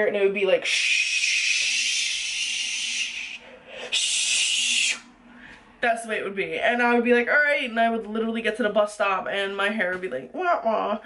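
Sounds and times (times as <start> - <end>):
woman imitating spray hiss: 0.6 - 5.0.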